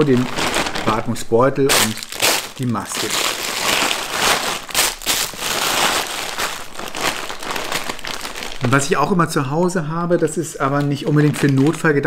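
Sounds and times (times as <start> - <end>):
plastic bag crinkling: 0.0 - 9.4, 10.5 - 12.0.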